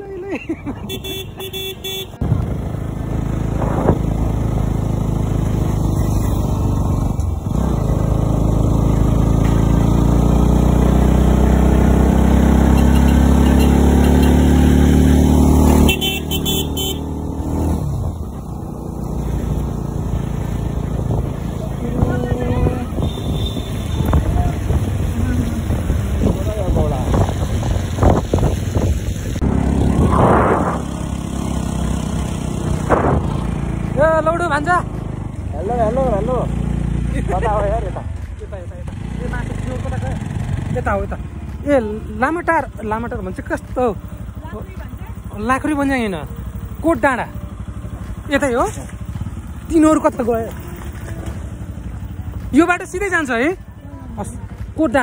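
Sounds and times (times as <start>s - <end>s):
motorcycle engine running: 0.9s - 55.0s
wind noise: 3.4s - 4.2s, 20.9s - 31.2s, 32.8s - 33.6s.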